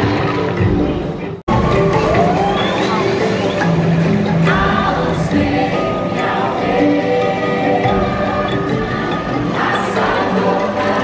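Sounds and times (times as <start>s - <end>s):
wordless choir singing held notes: 2.5s - 11.0s.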